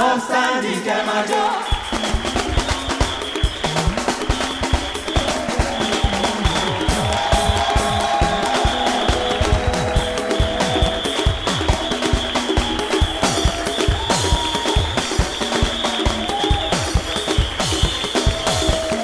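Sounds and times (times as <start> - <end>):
talking drums pitch-bending strokes: 0.0 - 19.0
dense drumming: 1.8 - 19.0.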